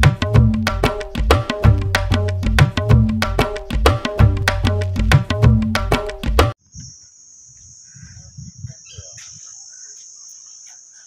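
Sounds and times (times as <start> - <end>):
high-pitched insect drone: 6.6 - 11.0.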